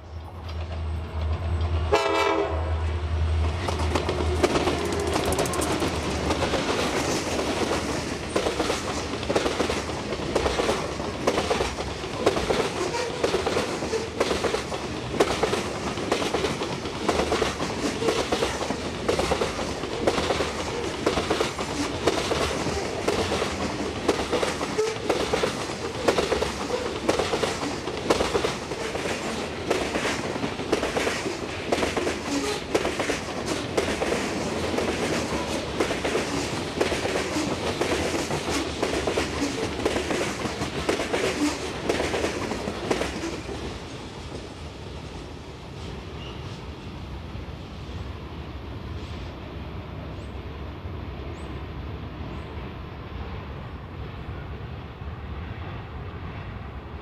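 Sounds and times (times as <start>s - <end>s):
freight train rumble: 0.0s - 57.0s
train wheels clicking over rail joints: 0.3s - 1.9s, 3.5s - 44.6s.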